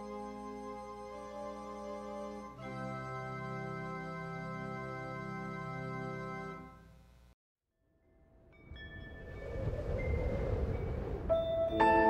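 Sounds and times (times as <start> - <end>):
low rumbling swell: 8.6 - 12.0.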